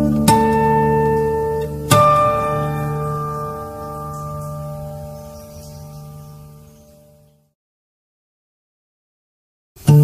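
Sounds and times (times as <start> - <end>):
acoustic guitar chord ringing: 0.0 - 7.4, 9.8 - 10.0.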